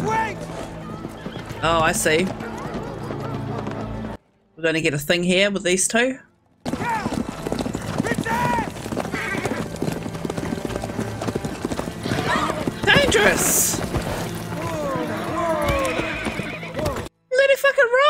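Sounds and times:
horses galloping: 0.0s - 4.3s, 6.5s - 17.1s
horse whinnying: 0.5s - 1.7s, 6.7s - 10.4s, 11.2s - 17.1s
man shouting: 6.8s - 7.2s, 8.1s - 8.8s.

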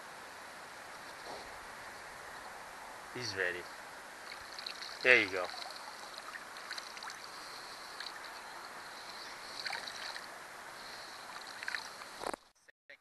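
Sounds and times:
high-pitched hiss: 0.6s - 12.4s
small splashes: 4.2s - 8.4s, 9.4s - 10.3s, 11.2s - 12.2s
water lapping at boat: 4.2s - 12.2s.

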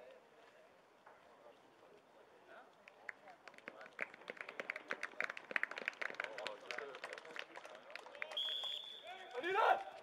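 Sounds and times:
people clapping: 2.8s - 10.0s.

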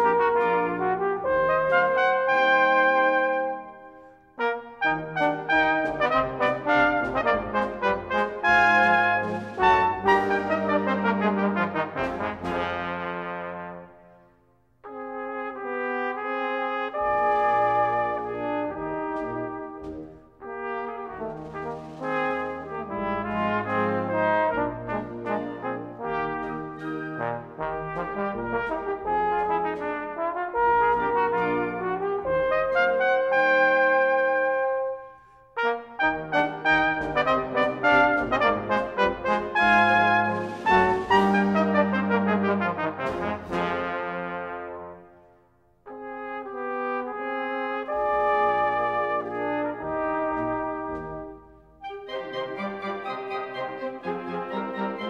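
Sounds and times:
band accompaniment: 0.0s - 3.7s, 4.4s - 14.0s, 14.9s - 34.4s, 35.6s - 45.0s, 47.8s - 55.0s
cornet and trombone duet: 0.0s - 14.2s, 14.8s - 55.0s.

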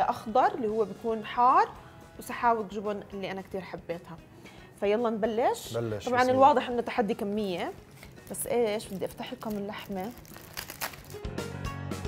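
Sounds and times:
background music: 0.0s - 12.0s
aluminium foil crinkling: 7.5s - 11.3s.

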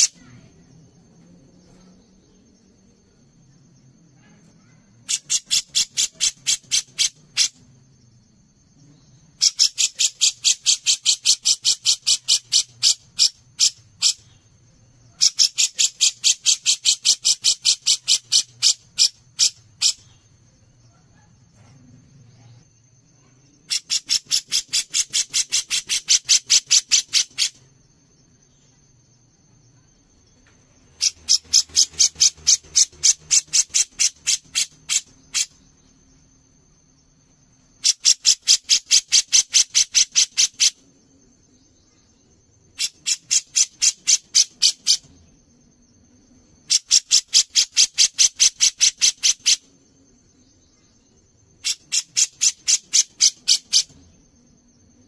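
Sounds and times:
bird repeating rapid harsh notes: 5.0s - 7.6s, 9.4s - 14.3s, 23.7s - 27.6s, 31.0s - 35.6s.

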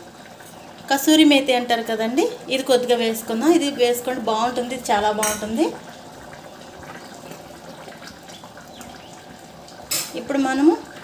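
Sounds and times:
curry bubbling in pot: 0.0s - 11.0s.

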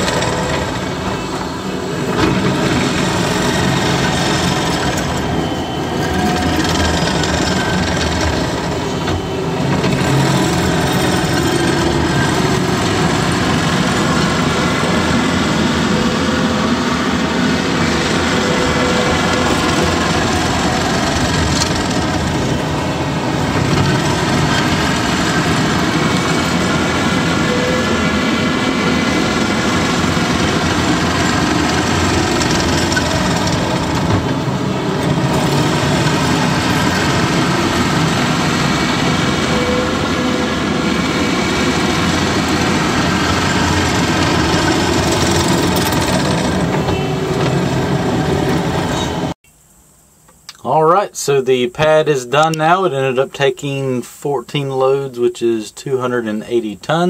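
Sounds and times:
diesel engine running: 0.0s - 49.4s.

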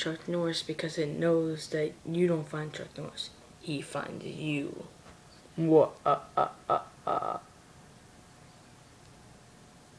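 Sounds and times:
faint background hiss: 0.0s - 9.9s
person vocalizing uh: 5.8s - 7.5s.

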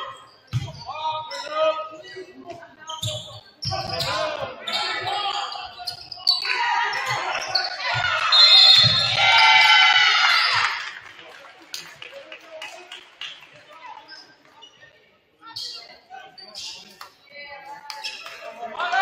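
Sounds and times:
people shouting in gym: 6.3s - 10.8s, 18.7s - 19.0s.

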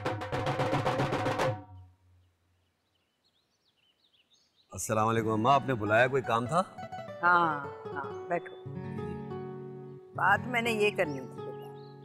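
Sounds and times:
faint bird chirps: 1.7s - 4.9s, 11.0s - 12.0s
man talking: 4.7s - 6.8s.

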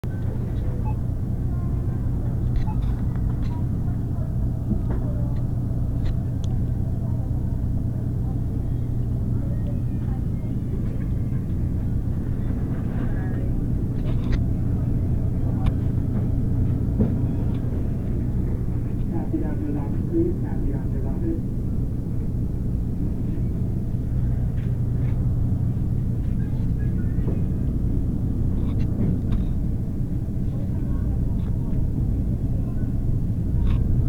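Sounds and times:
refrigerated display case humming: 0.0s - 34.0s.

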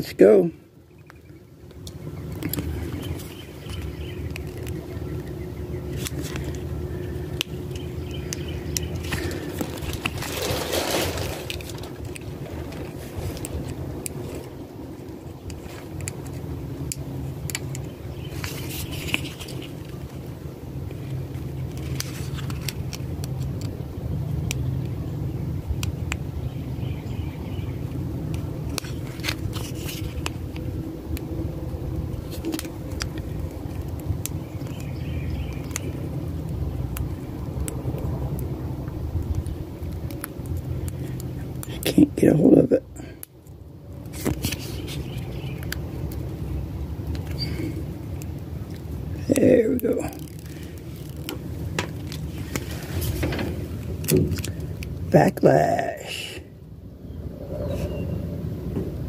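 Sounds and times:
low rumble: 1.3s - 41.8s, 56.4s - 59.0s
paper backing rustling: 8.9s - 14.5s, 28.7s - 30.4s.

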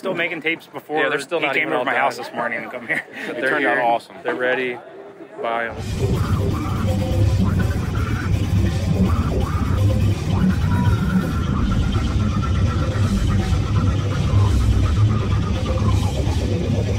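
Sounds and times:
death metal music: 5.7s - 16.9s.

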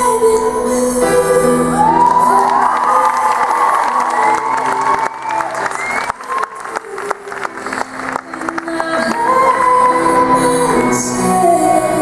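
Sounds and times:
background music: 0.0s - 12.0s
audience cheering and shouting: 1.6s - 8.2s.

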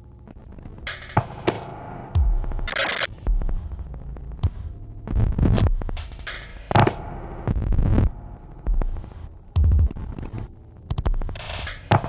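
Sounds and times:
noise bursts: 0.0s - 12.0s
throbbing synth bass pulses: 0.3s - 11.7s
sharp electronic clicks: 0.3s - 12.0s.

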